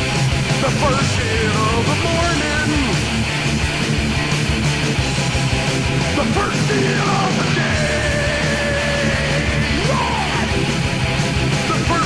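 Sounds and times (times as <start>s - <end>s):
punk rock music: 0.0s - 12.0s.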